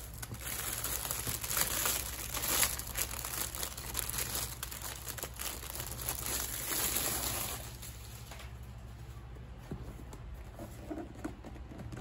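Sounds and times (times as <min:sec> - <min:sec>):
plastic shrink wrap crinkling and tearing: 0:00.0 - 0:08.7.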